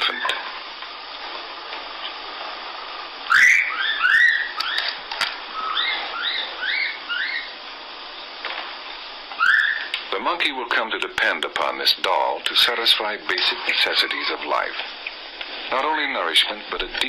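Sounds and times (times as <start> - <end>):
film soundtrack hiss: 0.0 - 17.0
infant monkey calling: 3.3 - 7.6, 9.4 - 9.9, 13.5 - 14.4.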